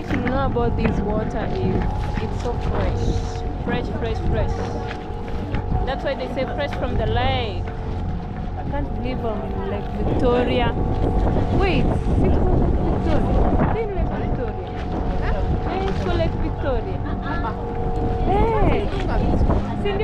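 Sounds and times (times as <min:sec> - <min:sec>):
boat engine running: 0:00.0 - 0:20.0
water splashing along hull: 0:00.0 - 0:20.0
wind buffeting microphone: 0:00.0 - 0:20.0.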